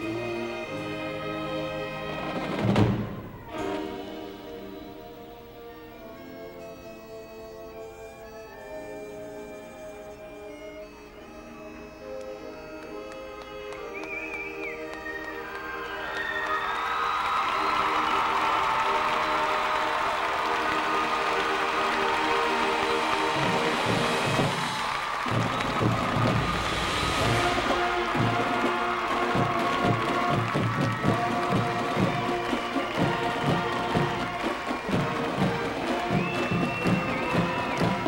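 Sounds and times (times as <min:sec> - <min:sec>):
horns sustained chord: 0:17.5 - 0:38.0
drums steady beat: 0:22.8 - 0:38.0.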